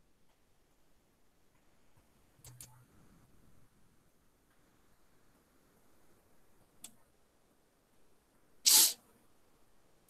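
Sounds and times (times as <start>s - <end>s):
breath burst into microphone: 8.7s - 9.0s.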